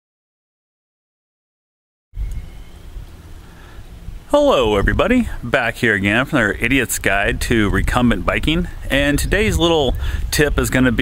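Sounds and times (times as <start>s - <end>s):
wind rumble on microphone: 2.2s - 11.0s.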